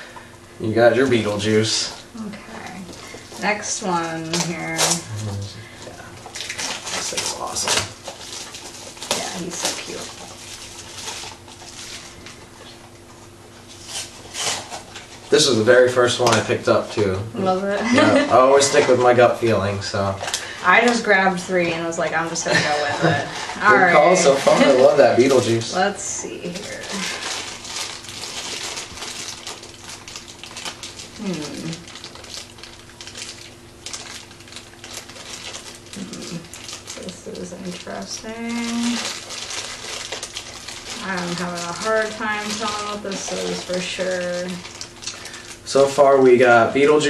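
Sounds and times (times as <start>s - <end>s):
packaging crinkling: 0.0s - 47.0s
cardboard and foil wrapper tearing: 0.7s - 12.9s, 13.6s - 47.0s.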